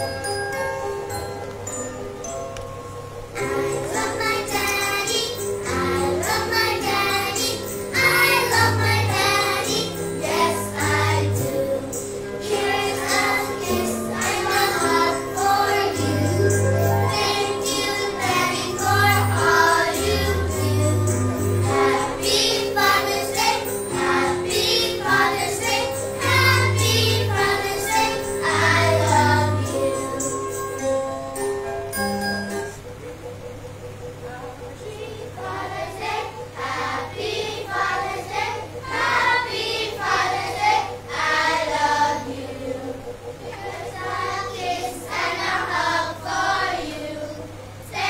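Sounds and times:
instrumental accompaniment: 0.0s - 48.0s
children singing a church song: 3.4s - 30.6s, 34.8s - 48.0s.

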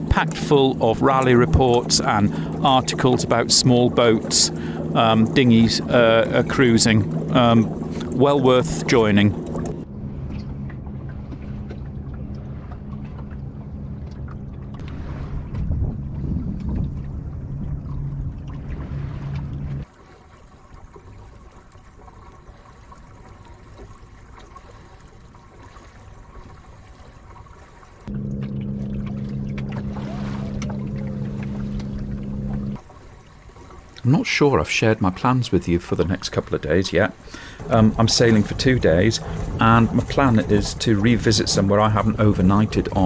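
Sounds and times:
steady low hum: 0.0s - 19.8s, 28.0s - 32.9s, 36.2s - 43.0s
water moving along a hull: 0.0s - 43.0s
wind on microphone: 14.8s - 19.8s.

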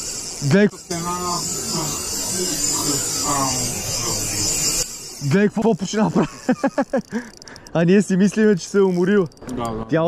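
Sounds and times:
fishing reel drag buzzing: 0.0s - 10.0s.

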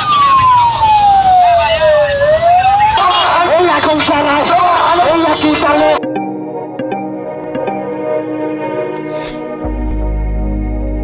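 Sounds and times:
siren wailing: 0.0s - 6.1s.

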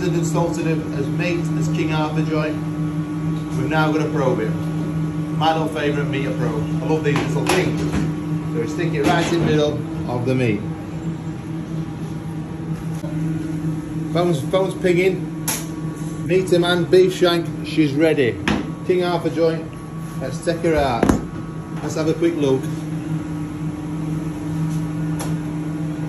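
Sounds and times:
kitchen machine hum: 0.0s - 26.0s.

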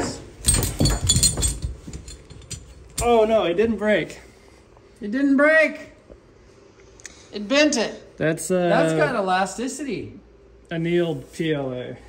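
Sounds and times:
metal hardware clinking: 0.1s - 3.4s.

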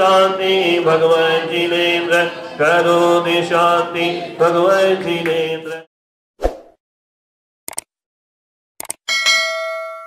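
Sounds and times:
brief clicks: 7.7s - 7.9s, 8.8s - 9.0s
bright bell ding: 9.1s - 10.0s.

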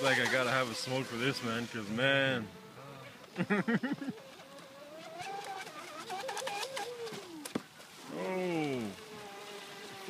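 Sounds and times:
speedboat motor whining: 0.0s - 10.0s.

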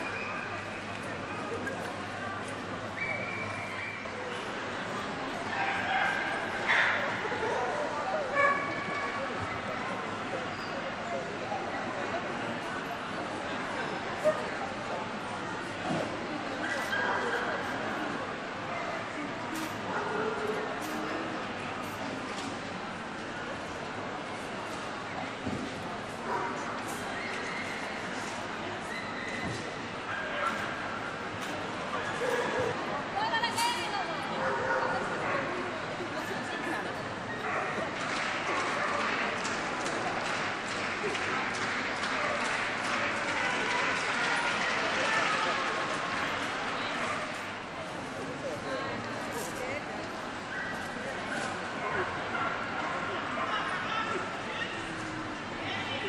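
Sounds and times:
murmur of crowd: 0.0s - 56.0s
people talking: 0.0s - 56.0s
dog barking in echoing hall: 5.5s - 9.2s, 30.1s - 30.8s, 34.4s - 35.7s, 37.4s - 39.2s.

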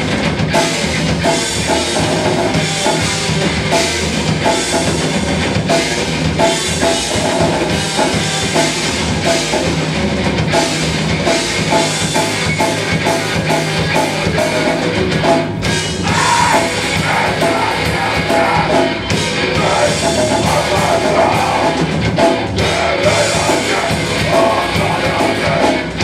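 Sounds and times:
fast drum beat: 0.0s - 26.0s
metal band playing live: 0.0s - 26.0s.

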